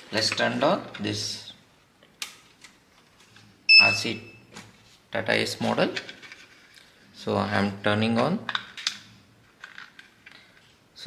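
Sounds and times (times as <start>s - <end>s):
high electronic beep: 3.7s - 4.4s.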